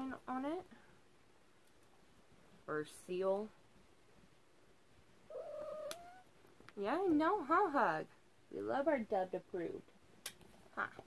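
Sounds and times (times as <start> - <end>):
cat meowing: 5.3 - 6.3.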